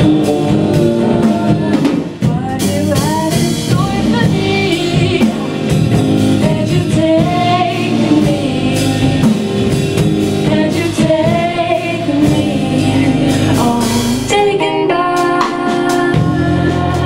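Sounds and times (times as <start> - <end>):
bass guitar: 0.0 - 17.0
drum kit: 0.0 - 17.0
electric guitar: 0.0 - 17.0
women singing: 0.0 - 17.0.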